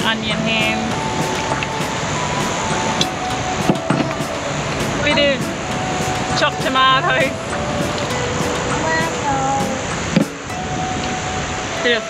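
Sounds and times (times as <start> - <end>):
soft background music: 0.0 - 12.0
surf noise: 0.0 - 12.0
wind rushing: 0.0 - 12.0.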